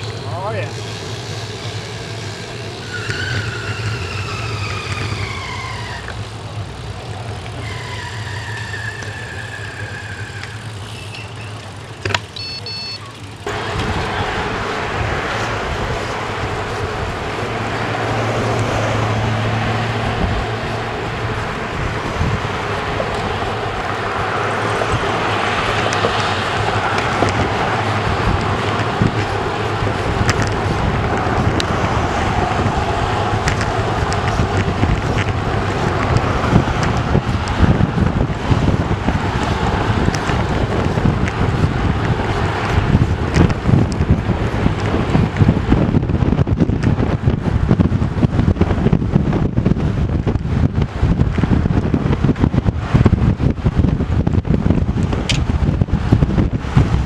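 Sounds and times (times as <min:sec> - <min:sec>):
car traffic: 0:00.0 - 0:57.0
wind rushing over microphone: 0:13.4 - 0:57.0.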